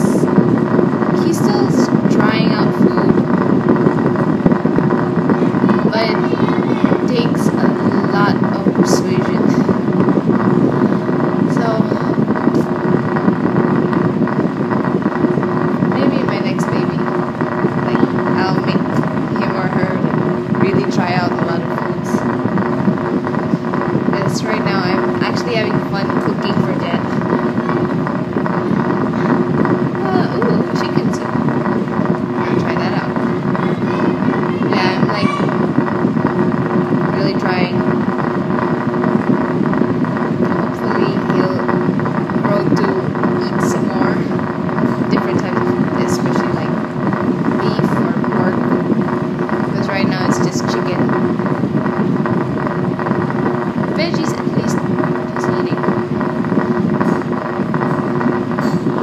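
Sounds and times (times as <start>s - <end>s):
woman speaking: 0.0s - 0.4s, 1.1s - 3.3s, 5.5s - 9.8s, 11.4s - 13.0s, 15.9s - 22.4s, 24.0s - 27.7s, 29.3s - 33.6s, 34.4s - 35.7s, 37.0s - 38.0s, 40.4s - 48.8s, 49.6s - 51.4s, 53.8s - 57.3s
low droning hum: 0.0s - 59.0s.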